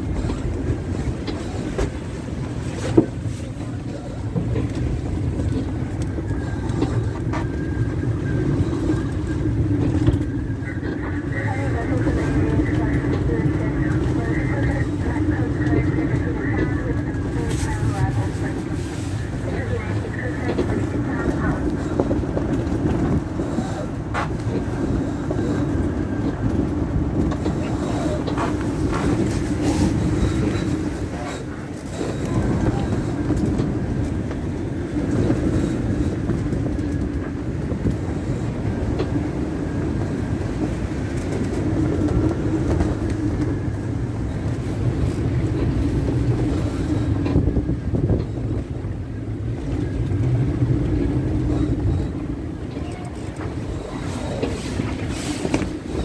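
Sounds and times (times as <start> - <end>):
water rushing along hull: 0.0 - 56.0
wind buffeting microphone: 0.0 - 56.0.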